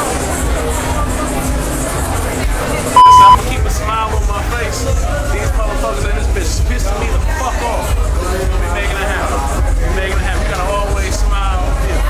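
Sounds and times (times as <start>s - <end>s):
censor bleep: 3.0s - 3.4s.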